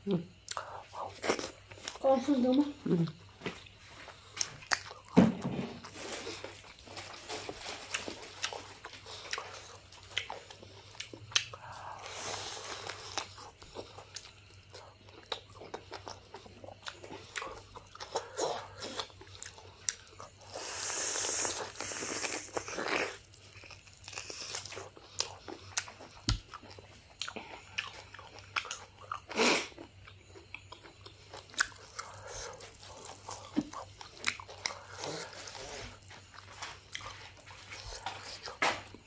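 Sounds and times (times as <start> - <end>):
wet chewing: 0.4 - 5.2, 5.8 - 39.0.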